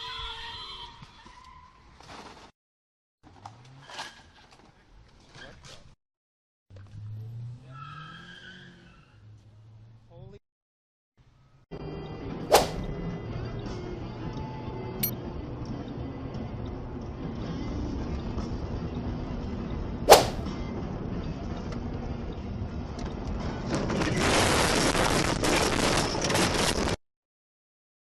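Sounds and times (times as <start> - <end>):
rushing noise: 20.1 - 20.4
sharp loud cracks: 20.1 - 20.4.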